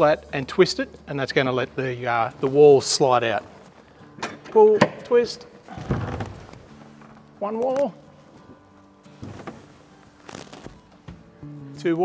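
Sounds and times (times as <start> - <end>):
caravan wall sliding out: 5.6 - 6.7.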